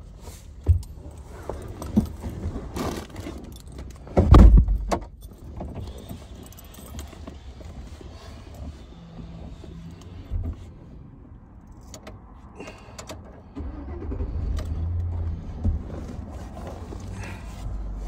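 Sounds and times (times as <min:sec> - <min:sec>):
truck engine rumble: 0:00.9 - 0:18.0.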